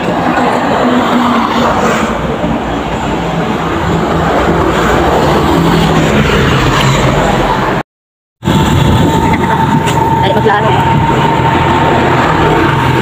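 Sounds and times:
traffic passing close by: 0.0s - 7.8s, 8.4s - 13.0s.

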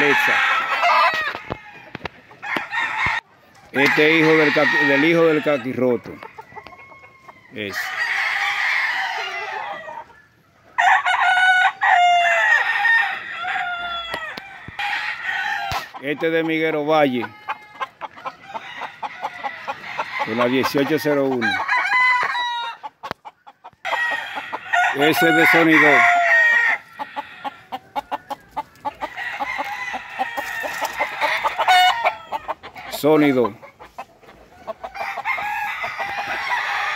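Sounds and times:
roosters crowing: 0.0s - 36.9s.

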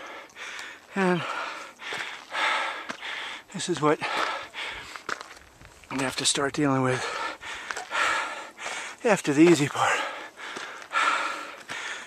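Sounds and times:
person breathing hard: 0.0s - 5.1s, 6.9s - 9.0s, 9.7s - 12.0s
footsteps on gravel and timber: 1.4s - 11.9s.

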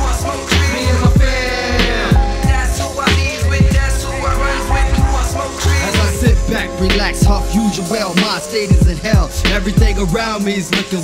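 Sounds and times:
rapping over a beat: 0.0s - 11.0s
deep kick drums: 1.0s - 2.7s, 3.6s - 4.0s, 8.7s - 10.1s.

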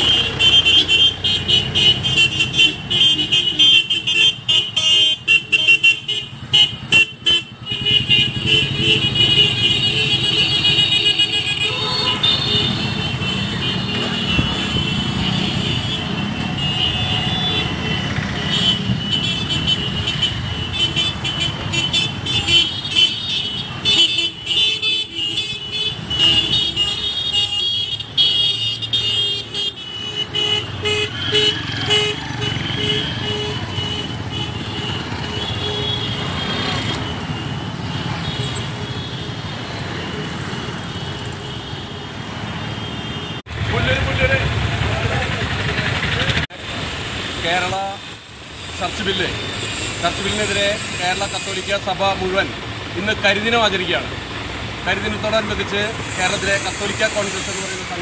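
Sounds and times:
horns tooting: 0.0s - 44.4s
scooter engines passing: 5.8s - 24.6s, 25.2s - 42.8s, 43.4s - 51.4s.

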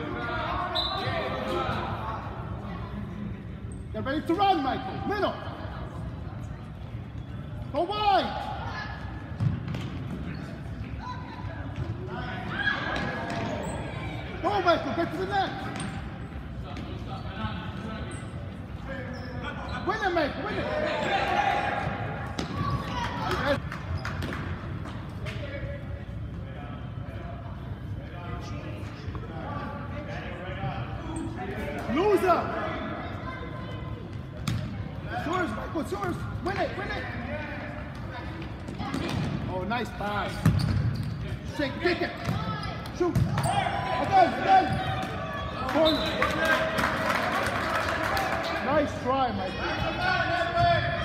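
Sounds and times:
ball bouncing on gym floor: 9.4s - 10.2s, 22.3s - 23.4s, 34.4s - 34.7s, 40.4s - 41.1s, 42.2s - 43.5s
players and spectators shouting: 19.9s - 23.6s, 42.4s - 51.0s.

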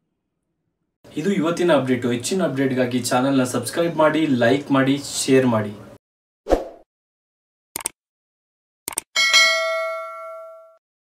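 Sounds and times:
bell ding: 9.2s - 10.8s.

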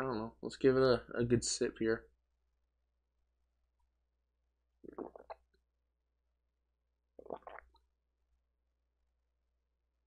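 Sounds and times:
person gulping a drink: 4.8s - 5.6s, 7.2s - 7.8s.

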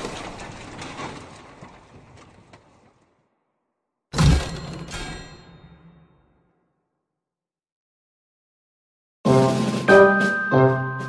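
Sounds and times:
small blocks crashing and tumbling: 0.0s - 3.2s.

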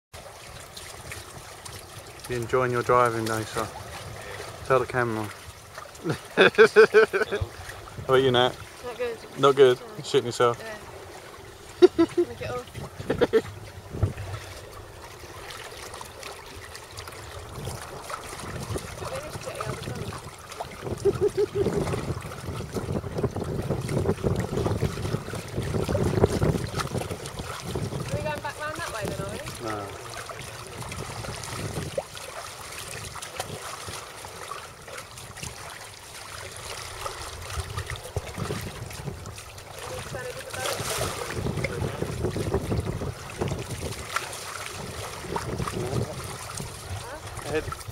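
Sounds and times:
water washing against boat hull: 0.1s - 47.9s
wind buffeting microphone: 6.4s - 15.4s, 17.2s - 32.2s, 36.7s - 47.9s.

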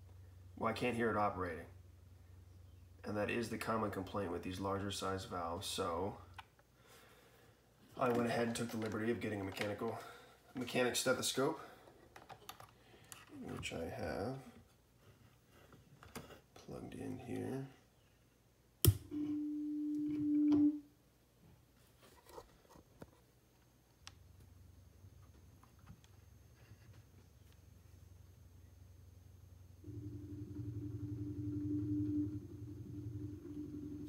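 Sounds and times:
electric motor hum: 29.8s - 34.0s.

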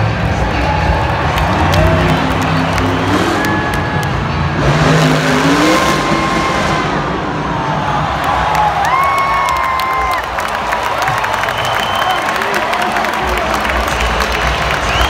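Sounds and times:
truck engine revving hard: 0.0s - 9.0s
stadium crowd cheering: 0.0s - 15.0s.

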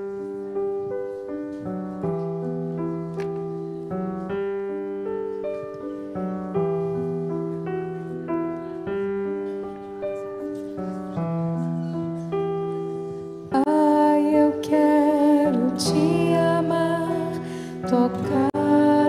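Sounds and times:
keyboard playing hymn melody: 0.0s - 19.0s.

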